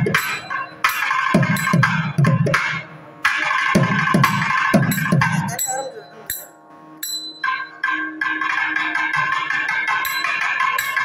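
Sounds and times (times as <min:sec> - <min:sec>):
thavil drums playing fast: 0:00.0 - 0:02.7, 0:03.4 - 0:06.4.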